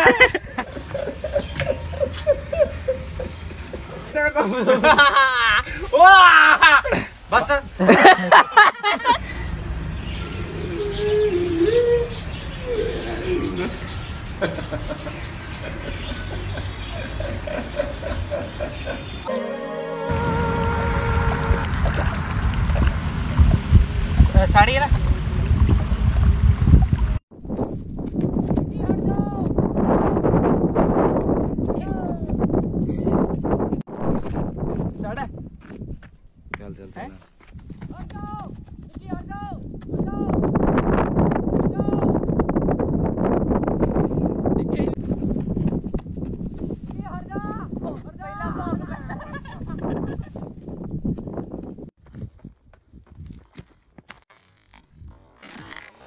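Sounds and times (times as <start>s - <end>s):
man laughing: 0.0s - 7.2s, 7.8s - 9.2s, 13.0s - 19.2s, 48.3s - 50.4s
footsteps running on dry grass: 45.0s - 47.0s, 50.4s - 54.3s.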